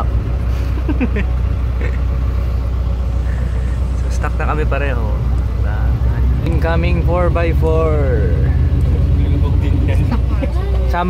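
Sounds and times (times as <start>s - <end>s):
car engine droning: 0.0s - 11.0s.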